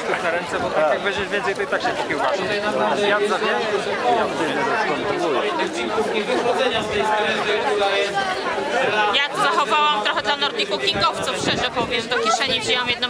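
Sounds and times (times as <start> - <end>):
overlapping chatter of voices: 0.0 - 13.0.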